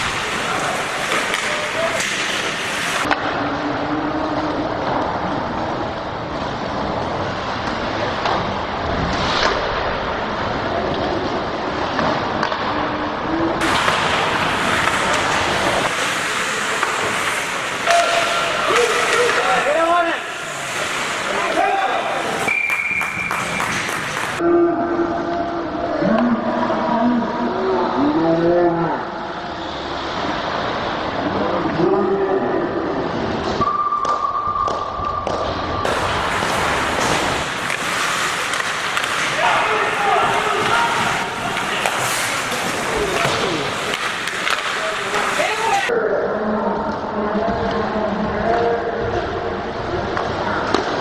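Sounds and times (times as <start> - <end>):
hockey sticks knocking: 0.0 - 3.2, 13.6 - 24.4, 34.0 - 45.9
people shouting: 15.8 - 23.7, 35.9 - 45.9
whistle-like tone: 22.5 - 23.7, 33.6 - 35.2.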